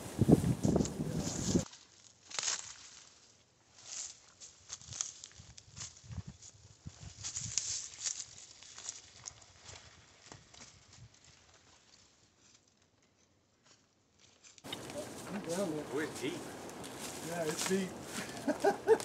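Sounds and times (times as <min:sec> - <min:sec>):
footsteps crunching dry leaves: 0:00.0 - 0:11.9, 0:14.7 - 0:19.0
twigs snapping: 0:02.2 - 0:02.9, 0:14.3 - 0:15.6, 0:16.4 - 0:19.0
branches brushing past: 0:14.2 - 0:19.0.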